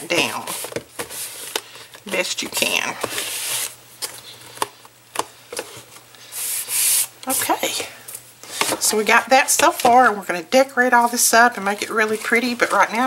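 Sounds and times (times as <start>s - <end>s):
palm swishing on paper: 6.3s - 7.1s.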